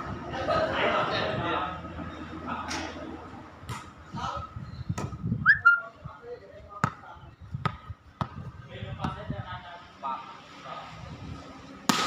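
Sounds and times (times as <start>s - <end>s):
players calling out: 5.5s - 5.9s.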